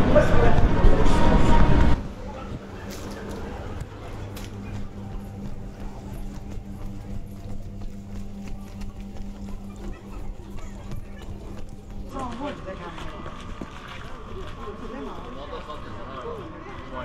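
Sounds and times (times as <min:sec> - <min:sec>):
footsteps on cobblestones: 0:00.0 - 0:17.0
steady low drone: 0:00.0 - 0:17.0.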